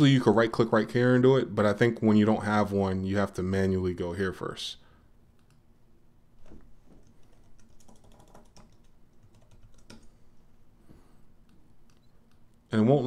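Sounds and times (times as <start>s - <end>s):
computer keyboard and mouse clicks: 6.4s - 10.1s.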